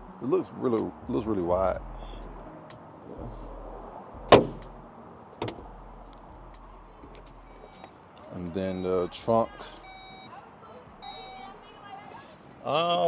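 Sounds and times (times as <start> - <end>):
car trunk lid slamming: 4.2 - 4.8, 5.4 - 5.7.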